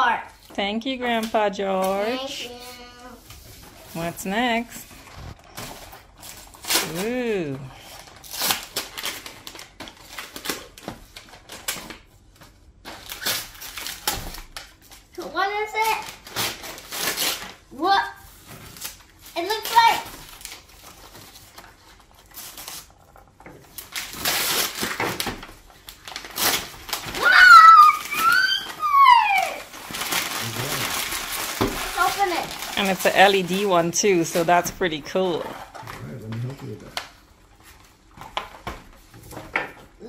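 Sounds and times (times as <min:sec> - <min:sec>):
wrapping paper tearing and crinkling: 0:01.1 - 0:04.1, 0:04.8 - 0:34.8
girl squealing excitedly: 0:27.1 - 0:29.7.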